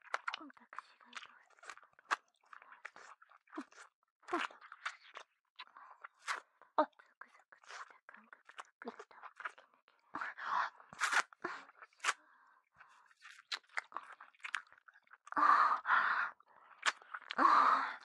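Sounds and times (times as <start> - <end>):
wet licking and lip smacks: 13.1 - 15.2, 16.8 - 17.4.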